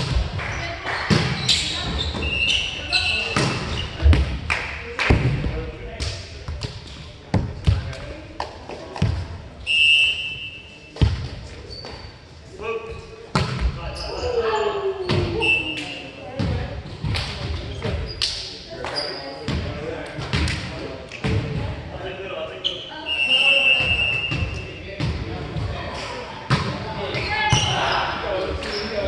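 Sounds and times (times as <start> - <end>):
sneaker squeaks: 0.5 - 4.1, 9.6 - 16.5, 17.4 - 19.6, 22.6 - 25.0, 26.5 - 29.0.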